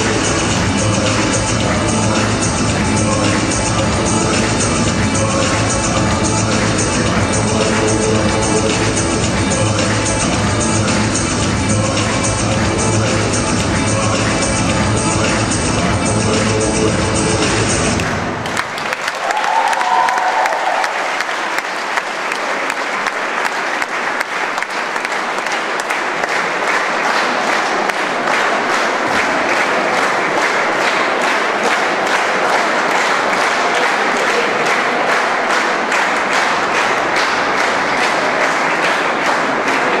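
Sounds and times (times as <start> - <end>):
dance music: 0.0 - 18.4, 26.8 - 40.0
rhythmic clapping: 0.0 - 40.0
audience applauding: 18.0 - 40.0.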